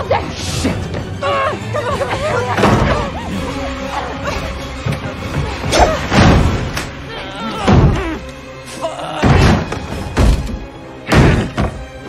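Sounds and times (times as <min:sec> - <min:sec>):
tense film score: 0:00.0 - 0:12.0.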